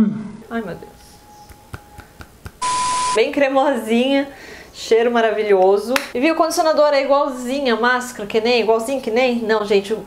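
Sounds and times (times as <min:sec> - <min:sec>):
static hiss with beep tone: 0:02.6 - 0:03.2.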